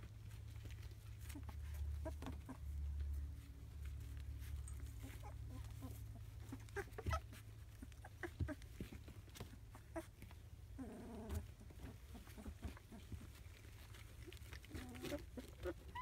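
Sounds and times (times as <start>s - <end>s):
puppies tapping and rustling: 0.0s - 16.0s
puppy vocal calls: 0.0s - 16.0s.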